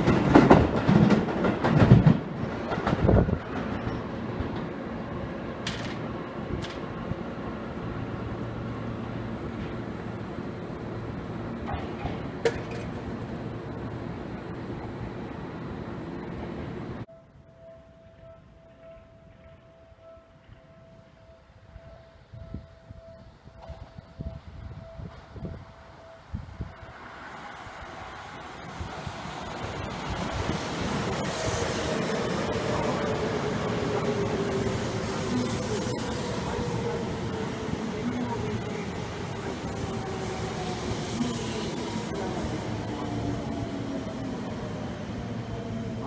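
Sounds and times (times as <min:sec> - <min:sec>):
electric train passing: 0:00.0 - 0:46.0
rail-yard background noise: 0:00.0 - 0:46.0
level-crossing warning bell: 0:17.1 - 0:26.9.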